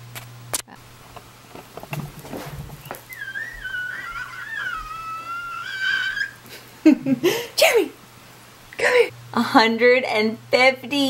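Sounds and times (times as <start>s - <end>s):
person whistling a tune: 3.1s - 4.4s.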